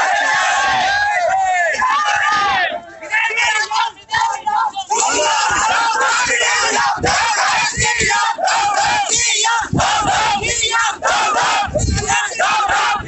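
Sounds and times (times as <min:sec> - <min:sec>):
crowd shouting slogans: 0:00.0 - 0:13.0.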